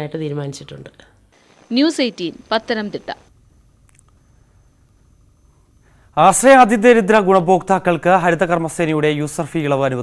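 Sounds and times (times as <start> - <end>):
faint background hiss: 0.0 - 10.0
woman speaking: 1.7 - 3.3.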